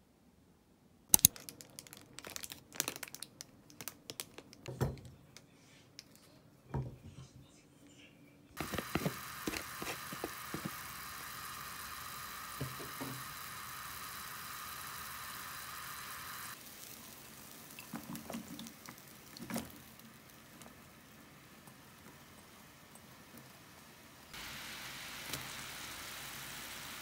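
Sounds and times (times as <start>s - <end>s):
beef simmering in water: 8.6s - 27.0s
sizzling hiss: 8.6s - 27.0s.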